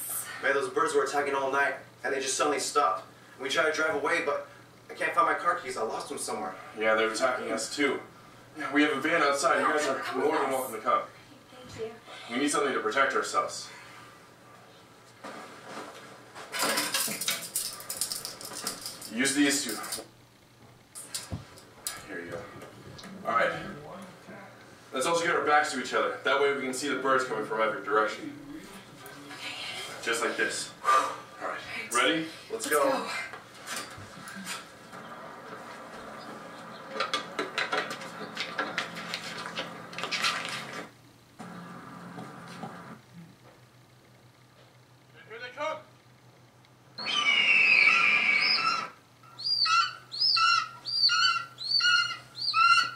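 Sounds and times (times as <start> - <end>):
steady hum: 0.0 - 47.1
wire hangers rattling and clinking: 16.6 - 20.0
sharp clicks and metallic clatter: 16.6 - 20.1.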